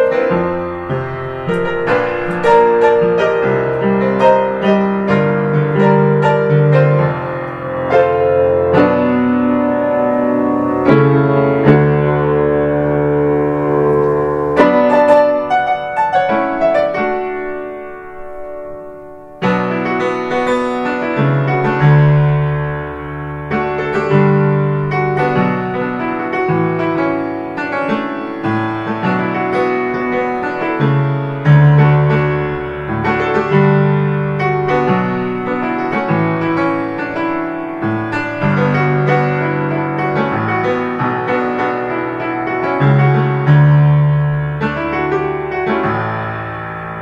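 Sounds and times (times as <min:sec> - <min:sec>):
upright piano playing pop song: 0:00.0 - 0:47.0.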